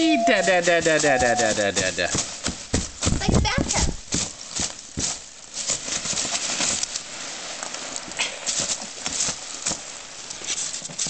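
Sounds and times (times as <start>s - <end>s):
packing peanuts rustling and squeaking: 0.0s - 11.0s.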